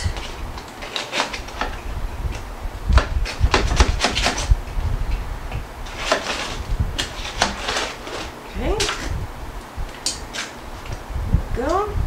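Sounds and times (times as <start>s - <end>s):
aluminium foil crinkling: 0.0s - 1.9s, 5.8s - 9.1s.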